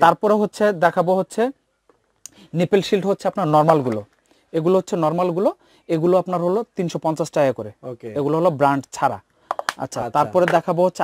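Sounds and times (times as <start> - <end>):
man speaking: 0.0 - 1.6, 2.3 - 11.0
plastic case clicking shut: 9.5 - 9.8.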